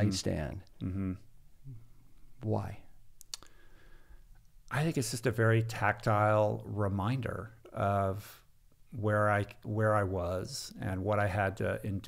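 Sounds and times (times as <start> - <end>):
man speaking: 0.0 - 1.8, 2.4 - 3.0, 4.7 - 12.0
faint sharp clicks: 3.2 - 3.5.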